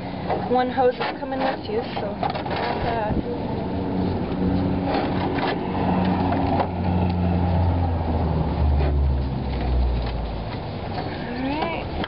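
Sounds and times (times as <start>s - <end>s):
low humming drone: 0.0s - 10.9s.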